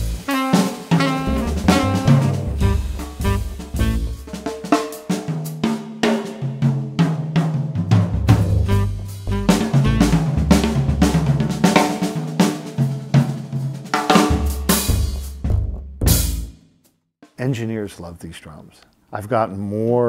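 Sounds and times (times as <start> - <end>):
drum kit playing: 0.0 - 16.6.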